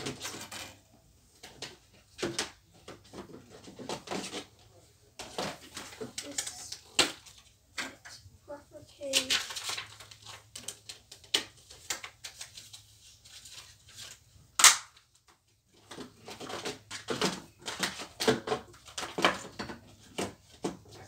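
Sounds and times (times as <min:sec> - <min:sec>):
objects clattering and rustling: 0:00.0 - 0:08.3, 0:09.0 - 0:14.2, 0:15.1 - 0:21.0.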